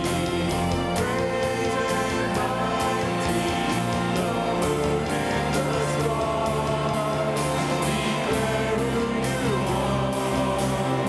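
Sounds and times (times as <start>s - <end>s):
choir and lead singers: 0.0s - 11.0s
instrumental accompaniment: 0.0s - 11.0s.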